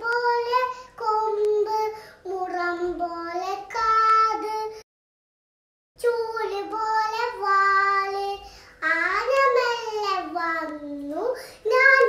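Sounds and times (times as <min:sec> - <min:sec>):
girl singing unaccompanied: 0:00.0 - 0:04.8, 0:06.0 - 0:12.0.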